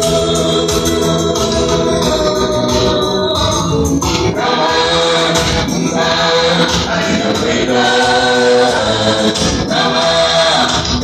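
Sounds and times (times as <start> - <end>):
choir singing gospel in harmony: 0.0 - 11.0.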